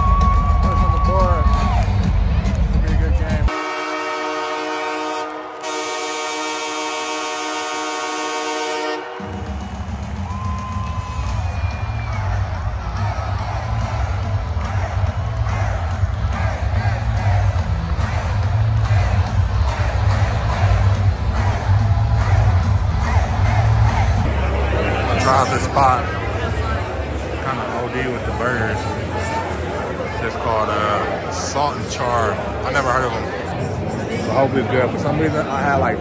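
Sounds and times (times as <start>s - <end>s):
crowd cheering: 0.0s - 34.1s
goal horn chord: 3.5s - 9.6s.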